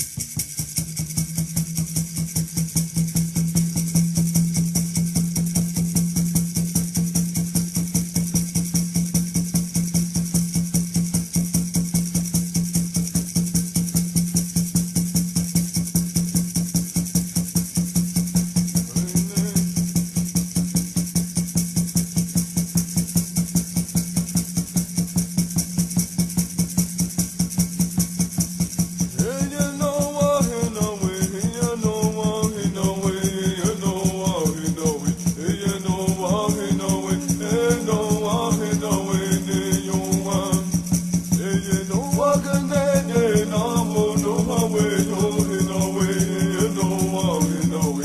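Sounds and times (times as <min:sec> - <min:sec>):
gourd rattle shaking: 0:00.0 - 0:48.0
water drum beat: 0:27.6 - 0:48.0.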